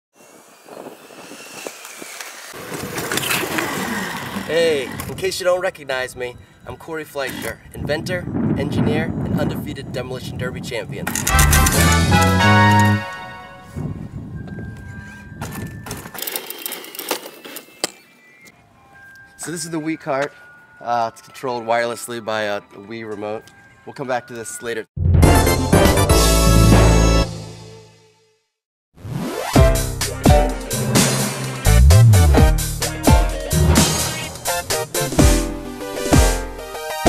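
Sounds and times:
electric motor whine: 0.2 - 4.5
electric go-kart whirring: 0.2 - 5.1
tyres rolling on asphalt: 1.7 - 5.2.

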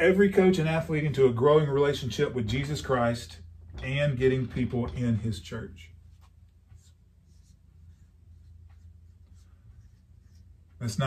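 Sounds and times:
marker writing on whiteboard: 6.0 - 10.9.

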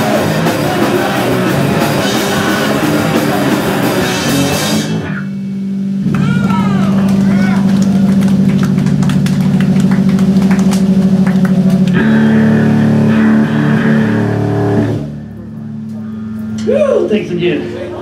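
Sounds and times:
full band song: 0.0 - 5.3, 6.0 - 15.1
electric guitar and bass drone: 0.0 - 18.0.

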